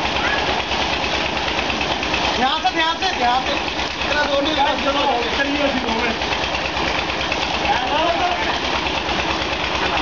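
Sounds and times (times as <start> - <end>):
engine chugging: 0.0 - 10.0
water pouring into pool: 0.0 - 10.0.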